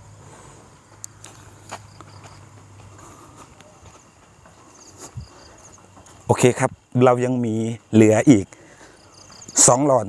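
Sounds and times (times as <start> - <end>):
night insects chirring: 0.0 - 10.0.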